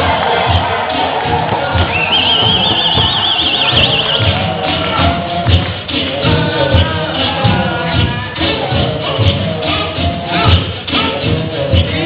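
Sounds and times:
beatbox kick-drum beat: 0.0s - 12.0s.

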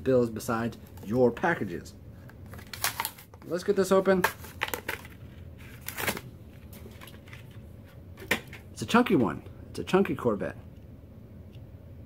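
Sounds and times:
faint handling of packaging: 2.2s - 8.6s
plastic packaging crackling open: 2.5s - 3.4s, 4.3s - 7.6s.

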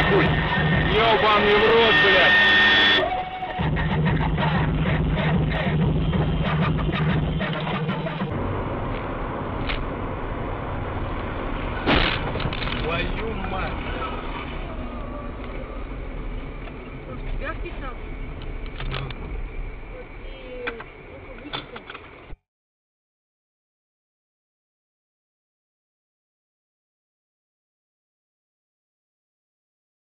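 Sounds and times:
car road noise: 0.0s - 22.4s
low engine hum: 0.0s - 22.4s
sharp loud bang: 11.8s - 12.4s.

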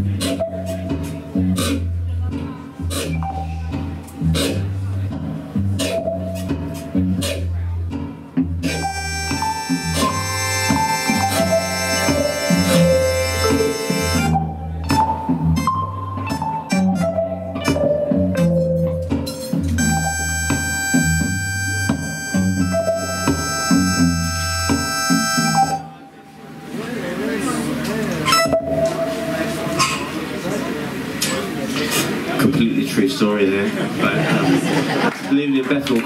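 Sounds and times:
high electronic tones: 8.7s - 14.3s, 19.8s - 25.9s
electric guitar falling melody: 8.7s - 14.4s, 19.8s - 25.8s.

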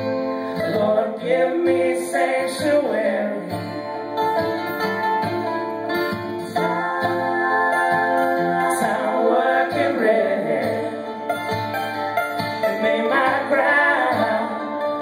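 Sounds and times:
mandolin: 0.0s - 15.0s
strummed acoustic guitar: 0.0s - 15.0s
man singing: 6.6s - 11.1s, 12.8s - 15.0s.

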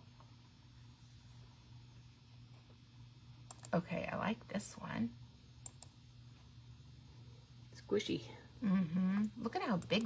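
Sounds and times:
faint low hum: 0.0s - 10.0s
computer mouse clicks: 3.5s - 3.8s, 5.6s - 6.0s.

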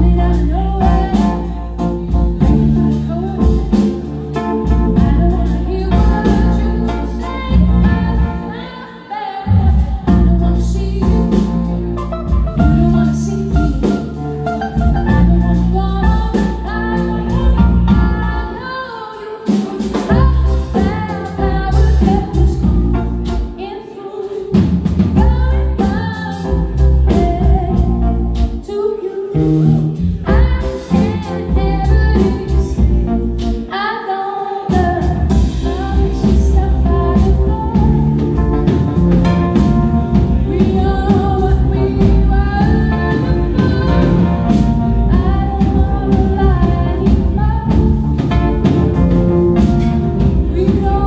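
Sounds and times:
electric bass guitar: 0.0s - 8.5s, 9.5s - 18.6s, 24.8s - 28.6s, 29.4s - 33.6s, 34.8s - 51.0s
drum kit: 0.0s - 8.7s, 9.4s - 33.8s, 34.6s - 51.0s
keyboard: 0.0s - 51.0s
person singing: 0.0s - 51.0s.

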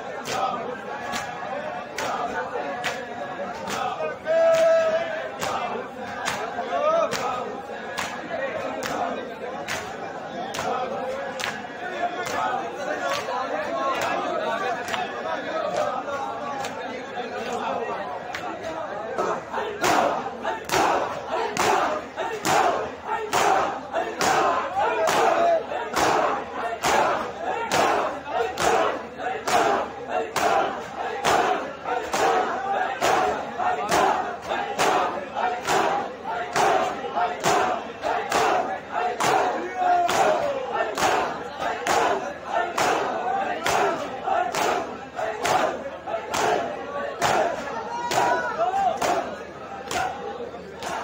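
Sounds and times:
crowd shouting and chanting: 0.0s - 51.0s
men slapping their chests: 0.2s - 11.6s, 12.2s - 13.3s, 19.8s - 50.2s.

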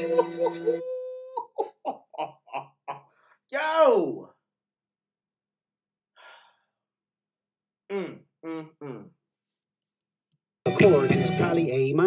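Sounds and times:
man humming mmm: 0.0s - 1.4s, 7.9s - 9.2s.

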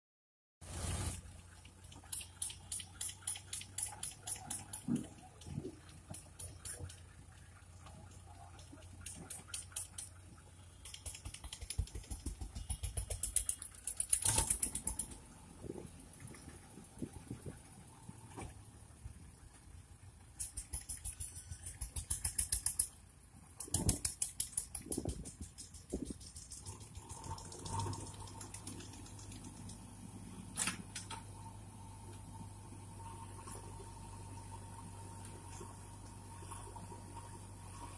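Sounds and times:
diesel engine humming: 0.7s - 37.9s
rapid sharp clattering clicks: 1.8s - 7.1s, 9.0s - 15.2s, 20.4s - 29.9s.

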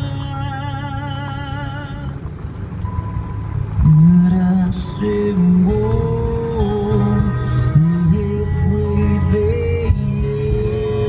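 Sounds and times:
car road and engine rumble: 0.0s - 11.0s
faint steady tone: 0.0s - 11.0s
music: 2.8s - 11.0s.

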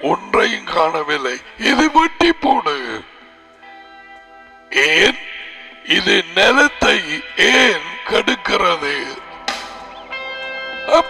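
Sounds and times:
man speaking: 0.0s - 3.2s, 4.7s - 9.3s
soft background music: 0.0s - 11.0s.

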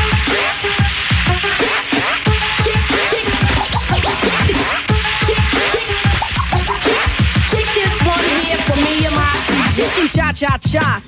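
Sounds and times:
hip hop drum beat: 1.1s - 11.0s
turntable scratching: 1.4s - 10.1s.

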